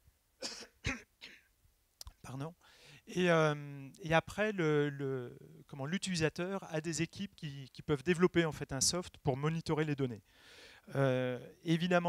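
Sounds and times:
man coughing: 0:00.4 - 0:01.5.

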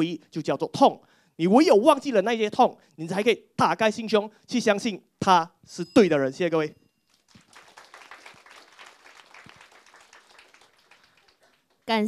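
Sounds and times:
audience applauding: 0:07.1 - 0:11.9.

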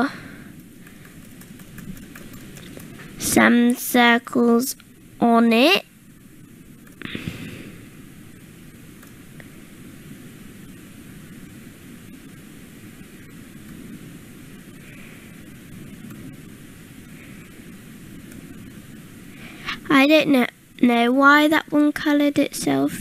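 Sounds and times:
background hiss: 0:00.0 - 0:23.0.

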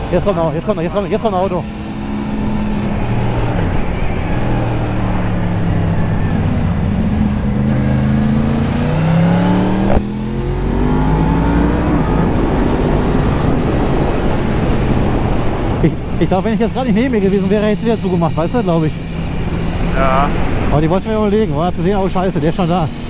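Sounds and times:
motorcycle engine revving: 0:00.0 - 0:20.7
wind rushing: 0:00.0 - 0:23.0.

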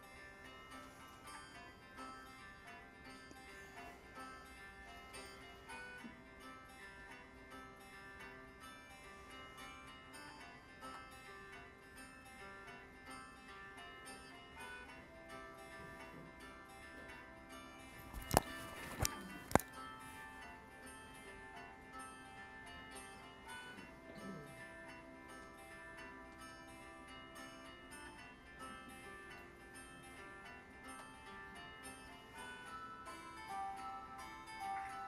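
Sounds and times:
light instrumental music: 0:00.0 - 0:35.0.

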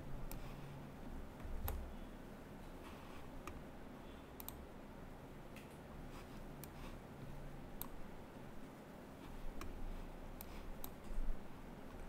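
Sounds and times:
low room hum: 0:00.0 - 0:12.0
computer mouse clicking: 0:00.2 - 0:00.6, 0:01.6 - 0:01.9, 0:04.4 - 0:04.6, 0:06.6 - 0:06.9, 0:07.8 - 0:08.0, 0:09.5 - 0:09.8, 0:10.4 - 0:11.2.

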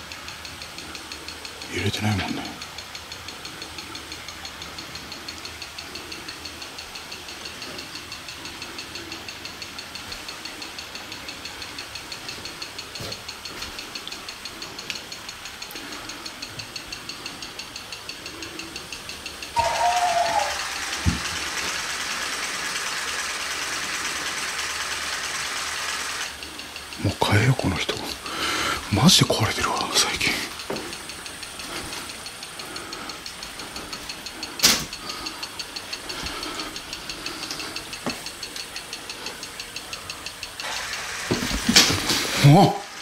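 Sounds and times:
rapid electronic ticking: 0:00.0 - 0:43.0
loud hiss of static: 0:18.2 - 0:43.0.

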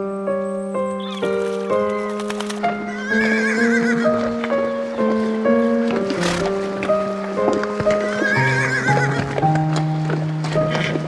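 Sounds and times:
background music with held notes: 0:00.0 - 0:11.0
galloping hoofbeats: 0:01.6 - 0:04.3, 0:05.8 - 0:11.0
horse neighing: 0:02.8 - 0:04.3, 0:07.9 - 0:09.3.

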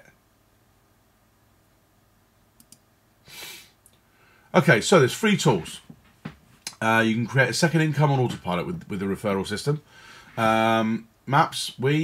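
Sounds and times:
faint clicks: 0:02.6 - 0:02.9
soft breath drawn in: 0:09.9 - 0:10.4.

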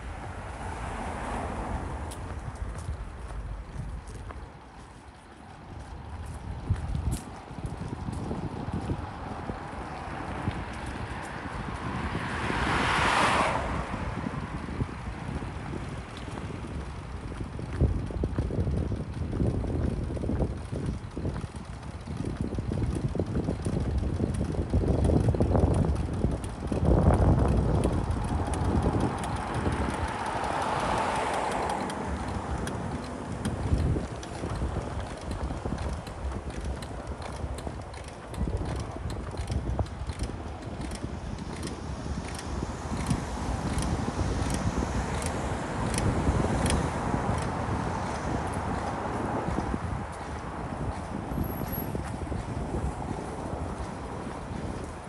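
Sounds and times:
car passing: 0:00.0 - 0:18.7, 0:24.4 - 0:55.0
city street ambience: 0:00.0 - 0:55.0
wind buffeting microphone: 0:00.0 - 0:55.0.

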